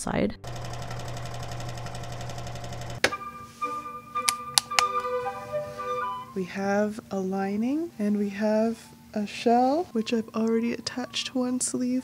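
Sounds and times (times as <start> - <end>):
sewing machine running: 0.4 - 3.0
music with sustained notes: 3.0 - 6.8.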